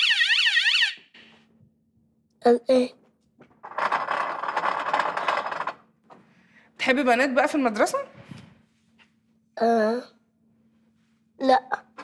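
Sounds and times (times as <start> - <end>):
electronic siren-like alarm: 0.0 - 1.2.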